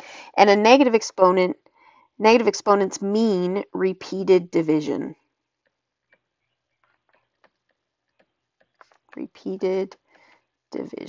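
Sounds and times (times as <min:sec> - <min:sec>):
stylus tapping on tablet screen: 0:05.5 - 0:10.4.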